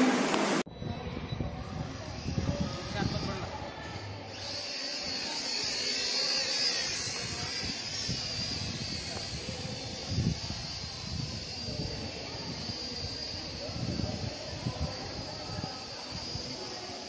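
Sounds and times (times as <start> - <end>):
drone motors whining: 0.0 - 17.0
faint voices: 0.0 - 17.0.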